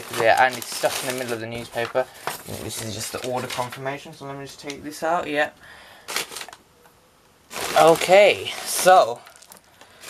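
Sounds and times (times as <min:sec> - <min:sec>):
crumpled newspaper rustling: 0:00.0 - 0:05.4, 0:06.0 - 0:06.6, 0:07.5 - 0:10.0.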